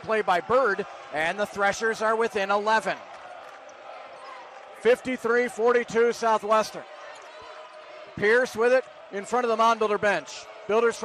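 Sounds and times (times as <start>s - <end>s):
man commentating: 0.0s - 3.0s, 4.8s - 6.9s, 8.2s - 11.0s.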